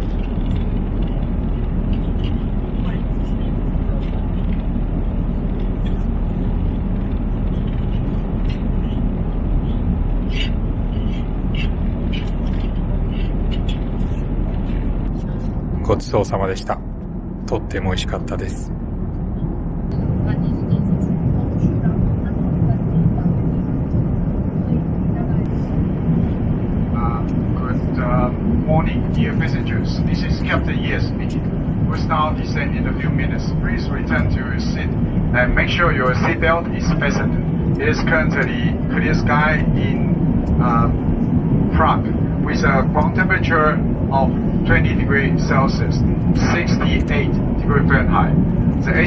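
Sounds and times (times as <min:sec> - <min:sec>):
airliner cabin rumble: 0:00.0 - 0:49.0
announcement over cabin speakers: 0:00.0 - 0:49.0.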